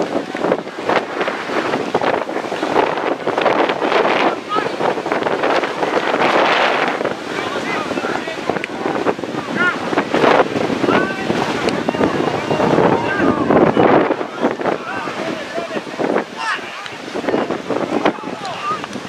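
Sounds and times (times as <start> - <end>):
wind buffeting microphone: 0.0 - 19.0
players and spectators shouting: 6.8 - 19.0.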